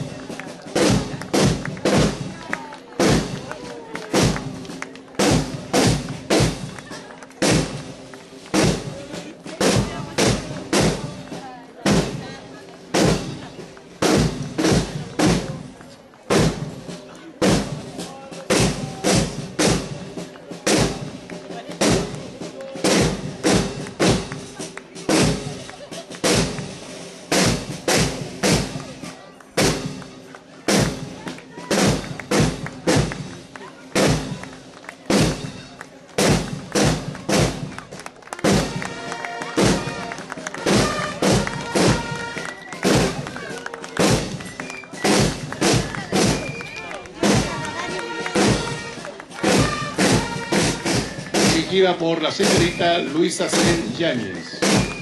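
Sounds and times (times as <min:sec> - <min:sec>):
marching snare and bass drums: 0:00.0 - 0:55.0.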